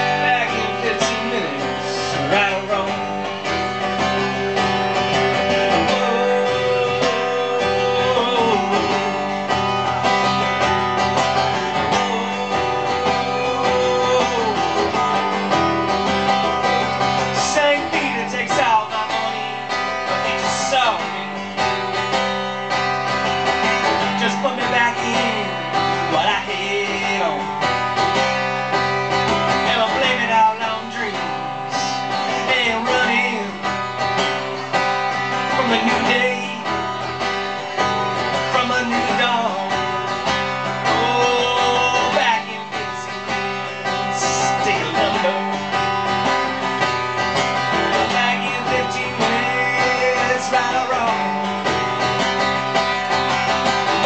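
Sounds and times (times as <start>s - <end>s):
acoustic guitar chords: 0.0s - 54.0s.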